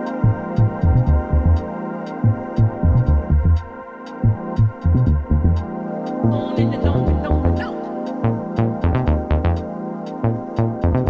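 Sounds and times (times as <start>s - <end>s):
hi-hat ticks: 0.0s - 11.0s
deep repeating synth bass: 0.2s - 9.7s, 10.3s - 11.0s
held synth chord: 5.4s - 10.5s.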